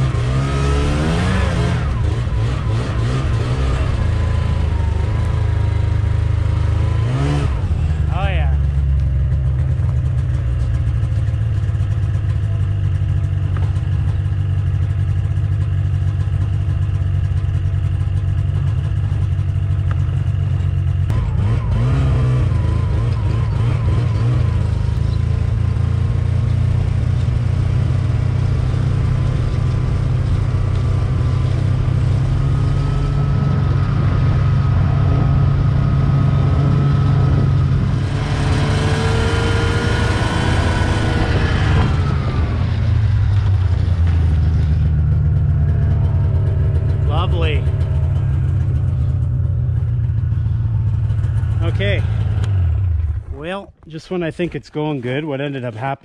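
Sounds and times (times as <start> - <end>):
snowmobile engine revving: 0.0 - 12.9, 21.1 - 49.2, 50.1 - 56.0.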